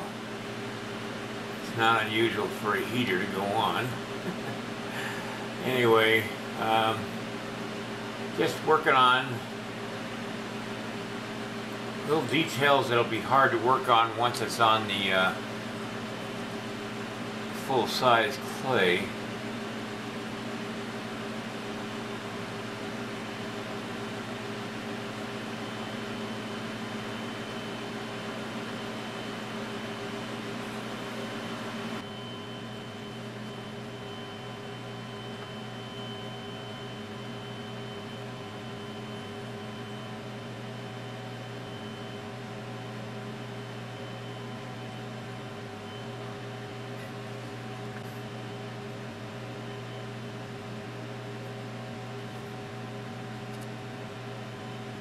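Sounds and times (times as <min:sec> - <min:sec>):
room heater humming: 0:00.0 - 0:55.0.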